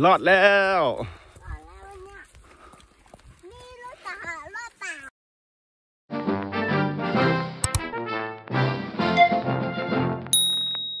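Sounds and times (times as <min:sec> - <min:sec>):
background music: 0:06.1 - 0:10.4
button click: 0:07.6 - 0:07.9
high bell ding: 0:10.3 - 0:11.0.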